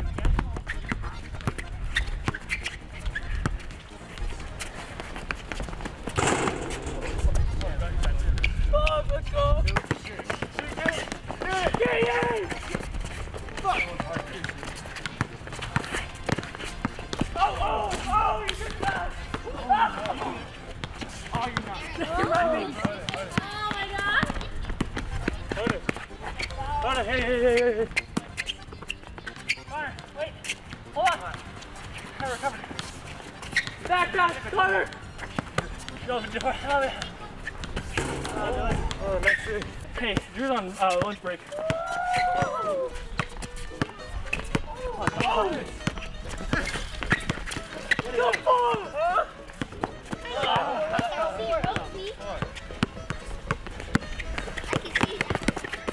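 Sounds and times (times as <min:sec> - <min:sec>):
basketball bouncing on asphalt: 0:09.7 - 0:12.9, 0:14.1 - 0:17.3, 0:20.8 - 0:26.0, 0:49.6 - 0:55.9.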